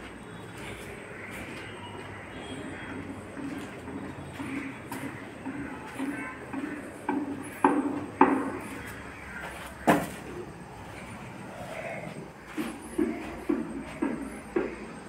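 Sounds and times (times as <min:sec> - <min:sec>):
footsteps on gritty concrete: 0:00.0 - 0:15.0
sharp knocks: 0:03.4 - 0:09.0, 0:09.8 - 0:10.4.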